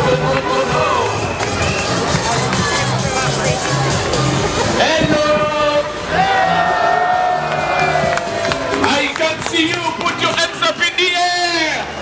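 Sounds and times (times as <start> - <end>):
upbeat music over loudspeakers: 0.0 - 12.0.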